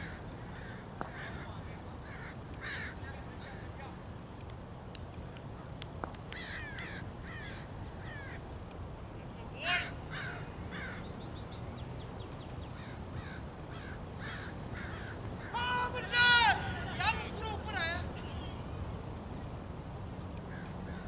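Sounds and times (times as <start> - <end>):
crows cawing: 0.0 - 3.8, 6.3 - 8.4, 9.6 - 11.1, 12.8 - 16.2, 20.5 - 21.0
people shouting loudly: 15.5 - 18.1.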